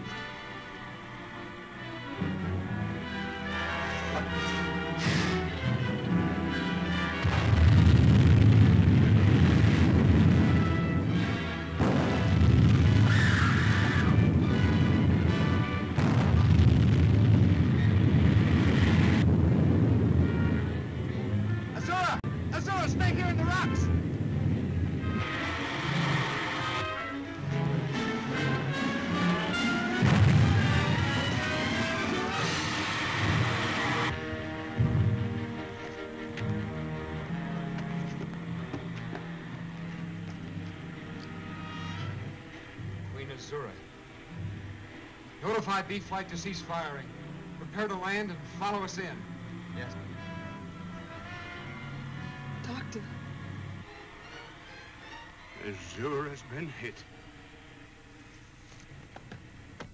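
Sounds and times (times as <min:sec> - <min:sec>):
dramatic background music: 0:00.0 - 0:58.3
heavy explosion booms: 0:07.2 - 0:21.5, 0:29.9 - 0:35.2.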